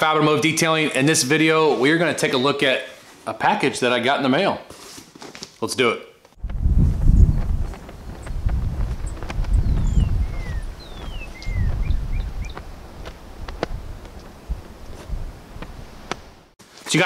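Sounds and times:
wind gusting on microphone: 6.4s - 16.5s
birds calling: 7.2s - 13.1s.

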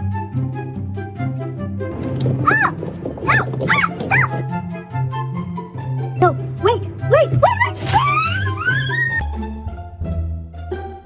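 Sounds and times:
background music: 0.0s - 11.0s
animal yelps: 2.4s - 4.4s, 7.1s - 9.2s.

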